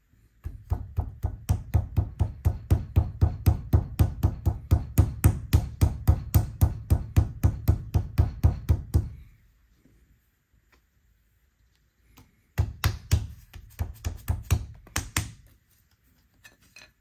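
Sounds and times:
palm slapping clay on stone: 0:12.1 - 0:15.5.

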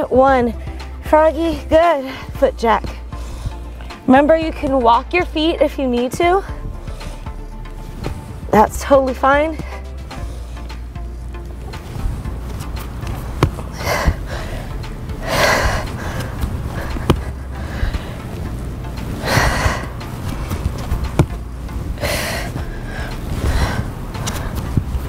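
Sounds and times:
workout music with steady beat: 0:00.0 - 0:25.0
person breathing heavily: 0:03.0 - 0:04.1, 0:06.5 - 0:08.5, 0:09.6 - 0:12.3, 0:13.2 - 0:25.0.

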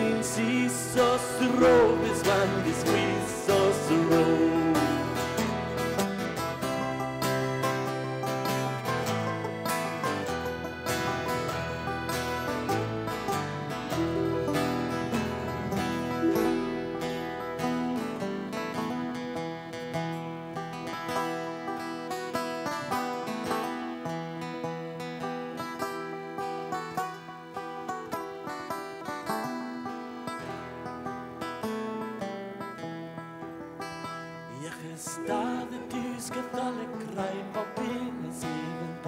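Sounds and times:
folk band playing: 0:00.0 - 0:37.6.

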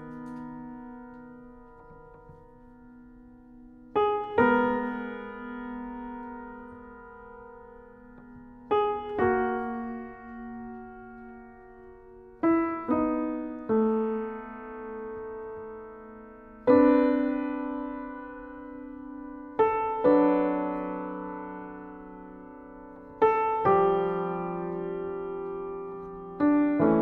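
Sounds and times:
slow piano chords: 0:00.0 - 0:27.0.

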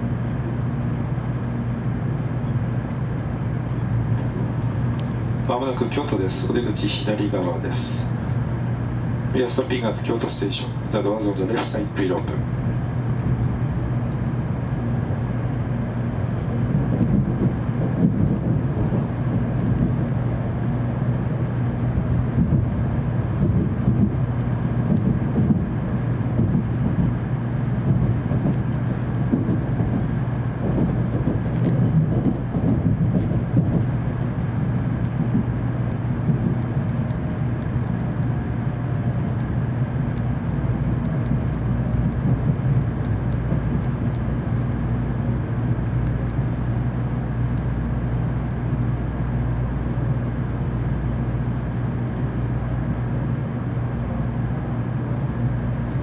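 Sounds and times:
faint steady hum: 0:00.0 - 0:56.0
wheels rumbling on rail: 0:00.0 - 0:56.0.

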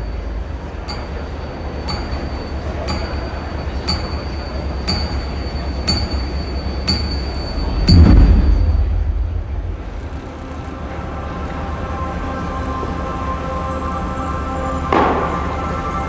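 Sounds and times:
high tick-beeps: 0:00.0 - 0:09.7
steady low drone: 0:00.0 - 0:16.0
deep loud hit: 0:07.6 - 0:10.4.

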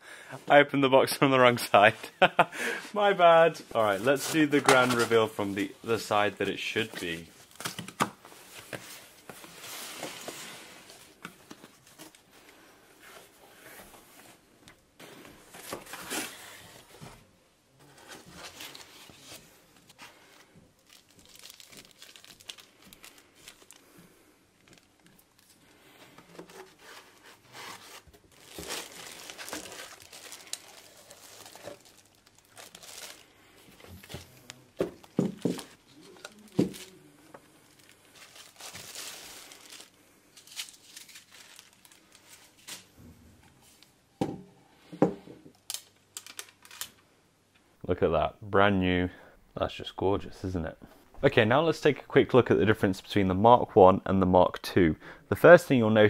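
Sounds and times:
plastic bag crinkling: 0:20.8 - 0:24.0, 0:26.9 - 0:37.0, 0:37.6 - 0:42.8.

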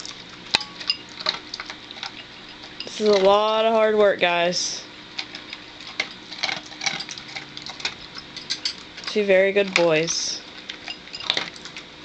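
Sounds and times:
dog chewing crunchy food: 0:00.0 - 0:12.0.

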